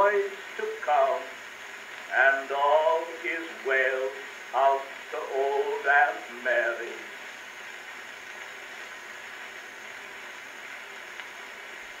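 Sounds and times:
faint record tick: 0.0 - 12.0
record surface hiss: 0.0 - 12.0.

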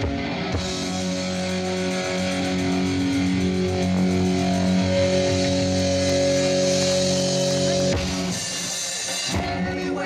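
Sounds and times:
live rock band instrumental: 0.0 - 10.0.

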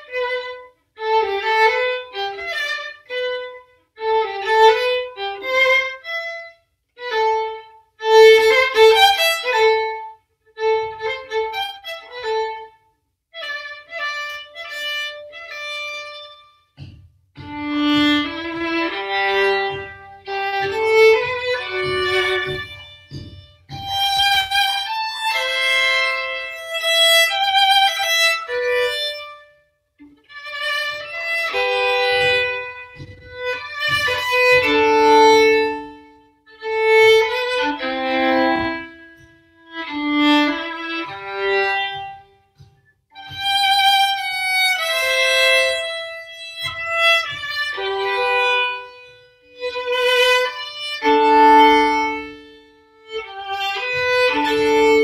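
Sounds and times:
bowed violin melody: 0.0 - 55.0.

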